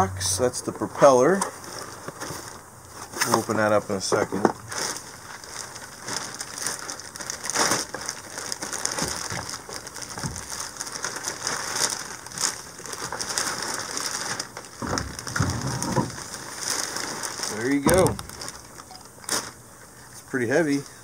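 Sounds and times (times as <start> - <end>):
plastic bag crinkling and rustling: 0.8 - 21.0.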